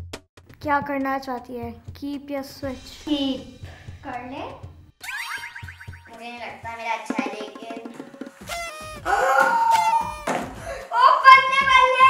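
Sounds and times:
background music: 0.0s - 12.0s
rising whistle-like sweeps: 5.0s - 6.2s
springy boing: 5.0s - 6.2s.

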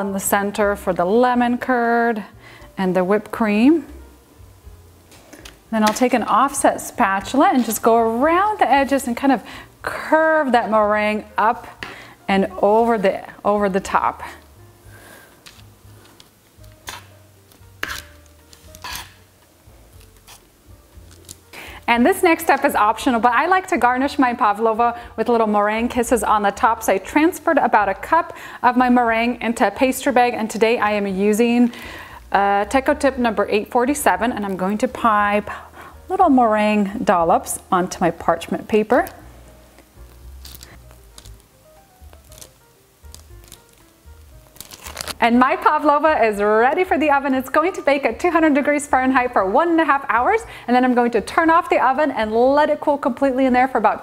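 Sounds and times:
faint background music: 0.0s - 54.0s
metal spatula scraping baking sheet: 7.3s - 8.2s, 17.8s - 19.2s.

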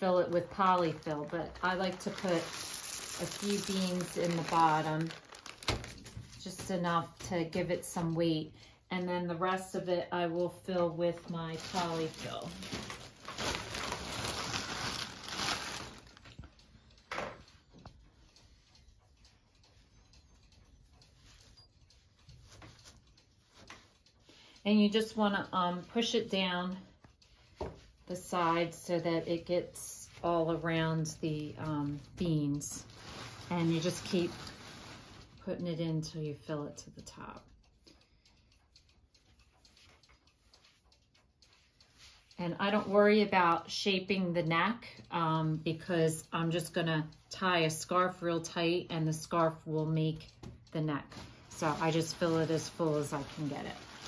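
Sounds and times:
plastic bag rustling: 0.0s - 6.4s, 11.5s - 16.4s, 32.7s - 35.4s, 51.1s - 54.0s
fiberfill soft rustling: 0.0s - 7.3s, 10.4s - 16.4s, 29.4s - 35.5s, 51.0s - 54.0s
soft ticks and rustles of stuffing: 0.0s - 54.0s.

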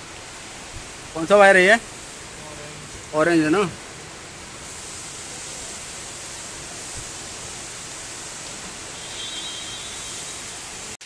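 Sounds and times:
steady hiss: 0.0s - 11.0s
faint thin high tone: 9.0s - 10.5s.

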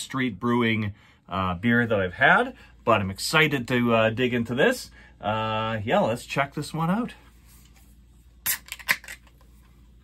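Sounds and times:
can pull tab cracking open: 8.5s - 9.3s.

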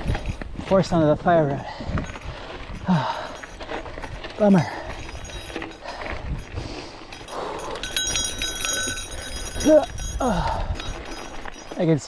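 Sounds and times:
wind rumble on microphone: 0.0s - 11.7s
gravel crunching under bike tyres: 0.0s - 12.0s.

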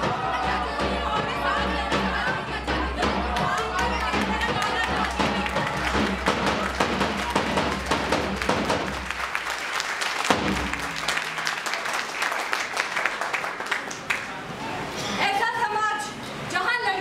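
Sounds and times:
hand clapping: 3.4s - 14.4s.

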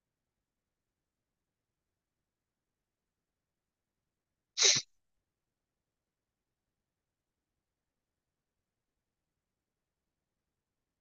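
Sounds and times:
person sneezing: 4.6s - 4.9s.

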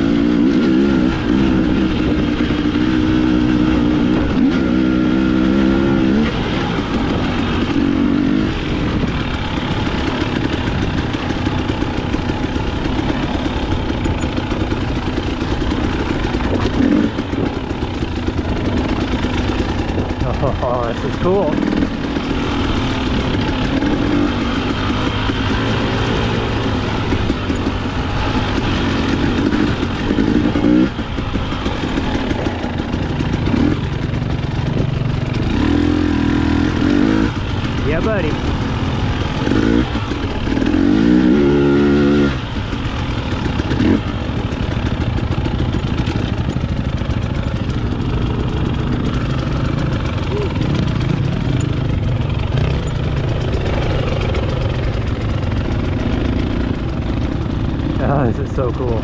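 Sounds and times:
motorcycle engine revving: 0.0s - 59.0s.

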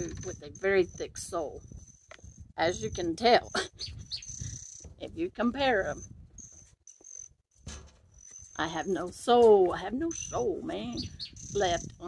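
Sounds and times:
insect trilling: 0.0s - 4.9s, 5.8s - 7.4s, 8.1s - 8.9s, 10.1s - 12.0s.

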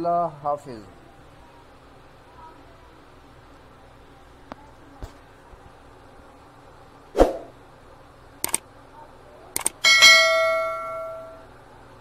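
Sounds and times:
quick double clicks: 8.4s - 8.6s
bell ding: 9.8s - 11.4s.

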